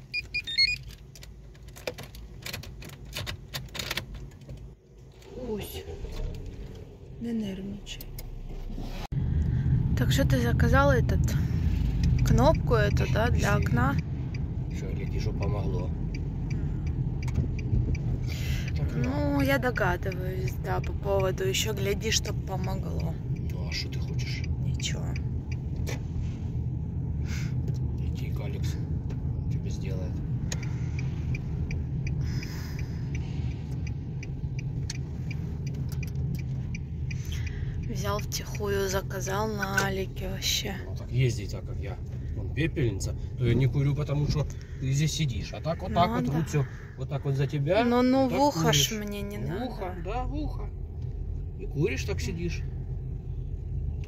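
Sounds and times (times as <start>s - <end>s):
car engine and road noise: 0.0s - 54.0s
turn signal ticking: 0.0s - 54.0s.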